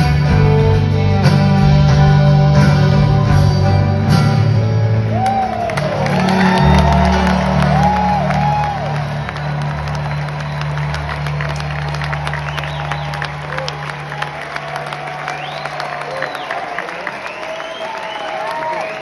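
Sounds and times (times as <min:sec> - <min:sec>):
audience cheering and whistling: 0:04.9 - 0:19.0.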